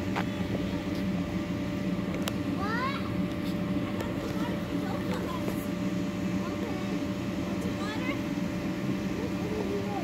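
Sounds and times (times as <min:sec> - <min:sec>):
low mechanical hum: 0:00.0 - 0:10.0
faint voices: 0:02.6 - 0:10.0.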